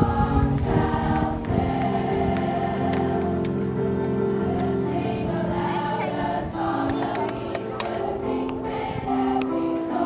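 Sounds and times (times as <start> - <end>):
choir singing: 0.0 - 10.0
electronic keyboard: 0.0 - 10.0.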